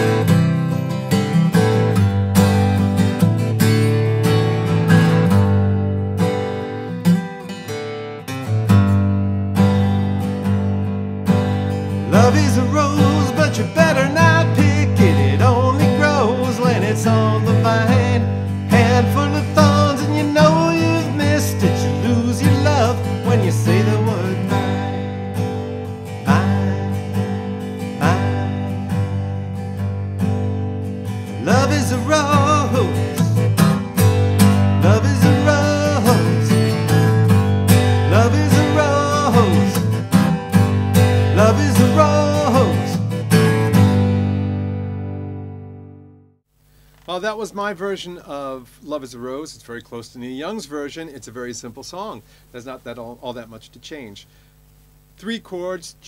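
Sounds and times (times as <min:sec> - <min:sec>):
strummed acoustic guitar: 0:00.0 - 0:46.4
man singing: 0:12.0 - 0:25.0, 0:26.2 - 0:28.7, 0:31.4 - 0:33.4, 0:34.8 - 0:37.2, 0:38.0 - 0:40.0, 0:41.2 - 0:43.2.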